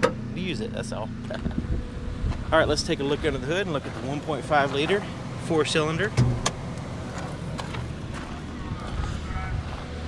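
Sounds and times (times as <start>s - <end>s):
steady low rumble: 0.2s - 10.0s.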